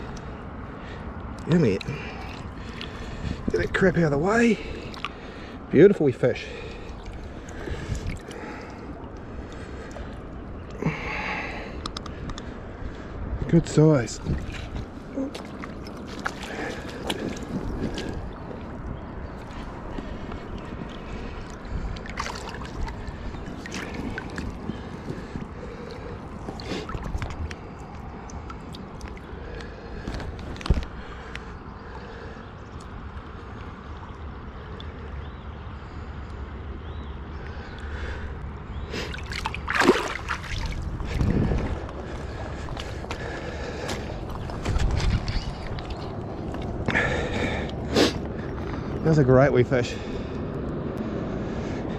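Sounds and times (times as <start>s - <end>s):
steady low rumble: 0.0s - 51.9s
fish splashing in water: 1.8s - 3.5s, 4.6s - 5.5s, 6.4s - 11.7s, 14.2s - 31.4s, 38.9s - 48.1s
river water gurgling over stones: 13.9s - 31.3s, 39.0s - 47.5s.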